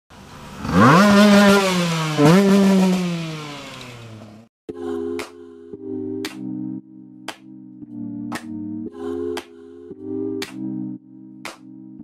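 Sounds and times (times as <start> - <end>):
motorcycle accelerating hard: 0.1 - 4.5.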